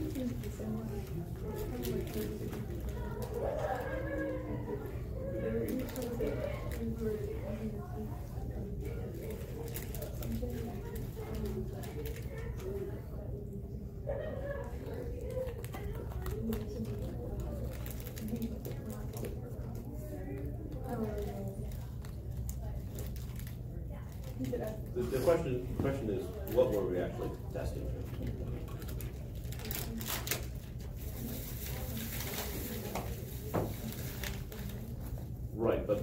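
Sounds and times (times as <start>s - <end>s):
murmured talking: 0.0s - 36.0s
steady room hum: 0.0s - 36.0s
paper rustling and clicking: 1.4s - 4.4s, 14.8s - 19.9s, 28.1s - 35.2s.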